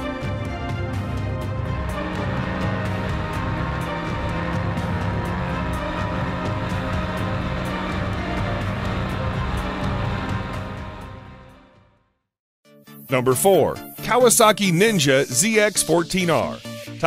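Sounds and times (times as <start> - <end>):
electronic music with steady beat: 1.0 - 11.3.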